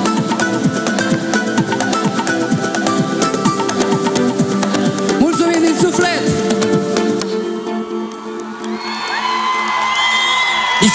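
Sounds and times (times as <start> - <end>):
live concert music: 0.0 - 10.9
crowd cheering: 7.6 - 10.9.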